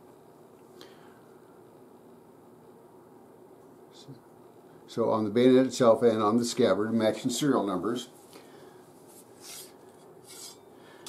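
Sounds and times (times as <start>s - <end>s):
blade drawn from metal scabbard: 9.4s - 10.6s.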